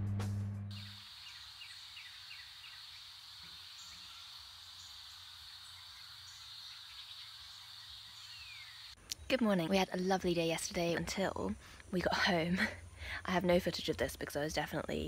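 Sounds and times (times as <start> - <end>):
insects hissing: 0.7 - 9.0
bird chirps: 0.7 - 9.3.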